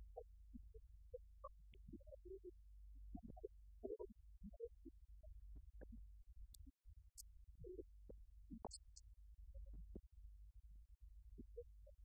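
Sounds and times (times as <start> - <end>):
faint small sounds: 0.0 - 12.0.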